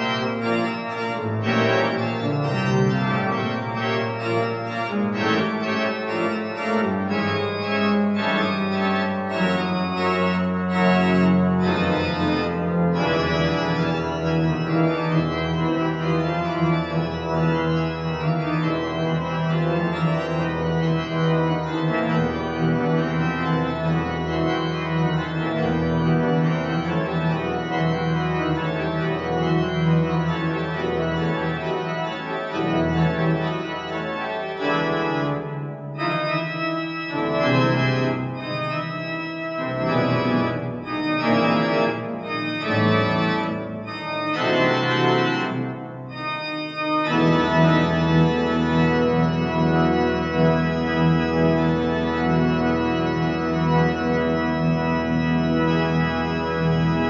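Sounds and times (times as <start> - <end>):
pipe organ chords: 0.0 - 57.0.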